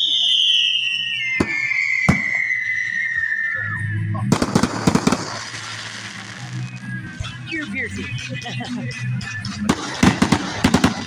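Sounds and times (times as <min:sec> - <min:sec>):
firework crackling: 0:00.0 - 0:03.6, 0:04.3 - 0:08.8, 0:09.4 - 0:11.0
firework whistle falling: 0:00.0 - 0:07.2
firework bangs: 0:00.2 - 0:03.4, 0:04.3 - 0:07.3, 0:09.6 - 0:11.0.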